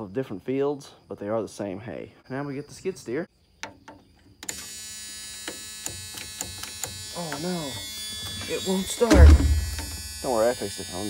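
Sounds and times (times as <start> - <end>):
steady electric buzz: 4.4 - 11.0.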